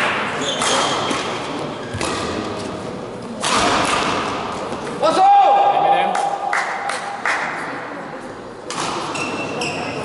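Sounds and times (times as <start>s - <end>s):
hall echo: 5.0s - 8.2s.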